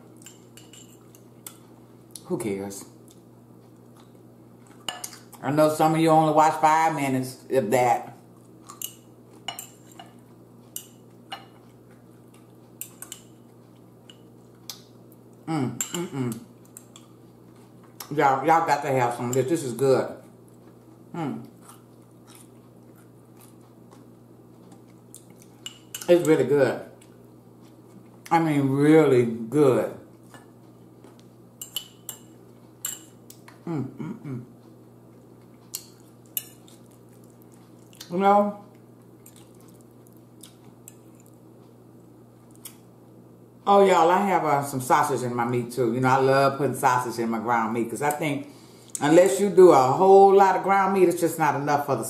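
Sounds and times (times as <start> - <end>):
fork clinking on plate and bowl: 0.2 - 1.2, 4.9 - 5.2, 8.7 - 10.2, 31.6 - 33.2.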